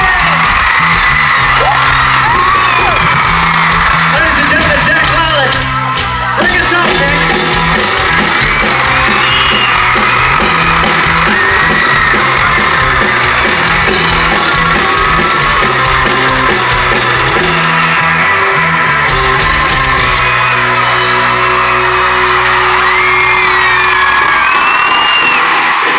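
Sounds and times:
fans screaming: 0.0 - 25.9
live pop-rock band playing: 0.0 - 25.9.

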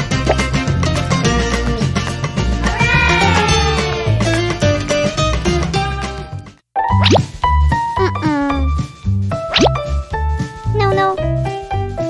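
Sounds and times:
cheerful background music: 0.0 - 12.0
cat meowing: 2.7 - 4.3.

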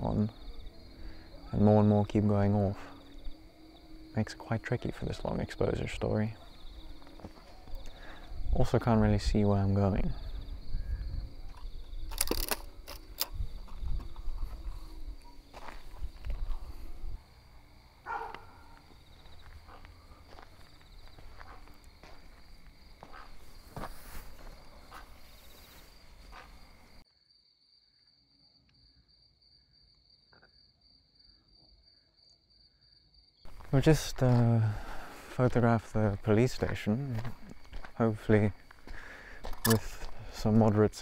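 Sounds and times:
crickets chirring: 0.0 - 41.0
footsteps: 6.8 - 8.0, 11.5 - 17.2, 18.1 - 27.0, 33.5 - 40.2.

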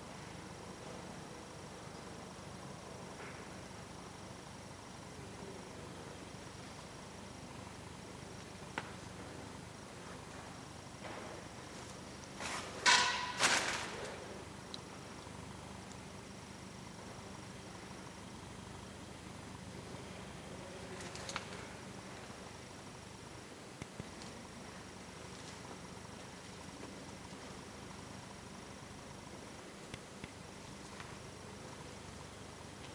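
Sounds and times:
low background machine hum: 0.0 - 32.9
rustling noise: 11.6 - 14.3.

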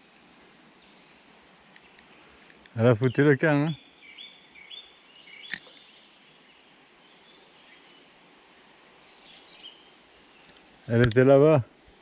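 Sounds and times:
faint birdsong: 0.0 - 12.0
sharp click: 5.4 - 5.8, 10.4 - 11.2.

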